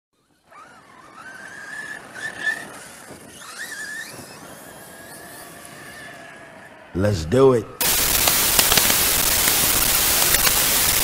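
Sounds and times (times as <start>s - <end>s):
electric motor whining: 7.8s - 11.0s
tyres churning loose gravel: 7.8s - 11.0s.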